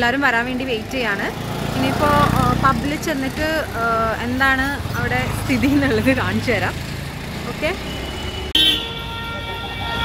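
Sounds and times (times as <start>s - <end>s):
street traffic rumble: 0.0s - 10.0s
vehicle horn steady tone: 7.8s - 10.0s.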